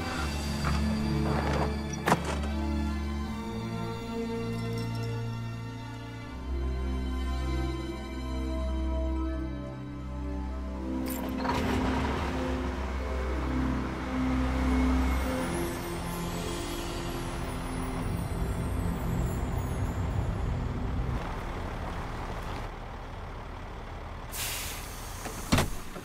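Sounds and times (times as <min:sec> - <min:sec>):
music: 0:00.0 - 0:21.2
truck engine and road noise: 0:00.0 - 0:26.0
air brakes hissing: 0:24.3 - 0:26.0.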